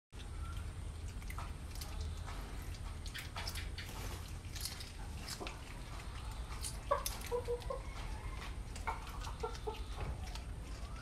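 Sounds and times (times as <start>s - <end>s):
clucking animal calls: 5.2s - 11.0s.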